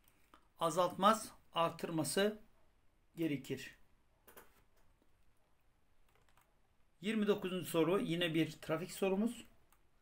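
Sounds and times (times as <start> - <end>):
soft clicks: 4.2 - 6.6.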